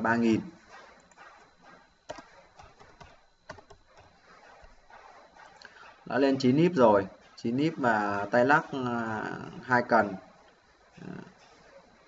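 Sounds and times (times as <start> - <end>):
low room noise: 0.0 - 12.0
keyboard and mouse clicks: 2.1 - 4.7.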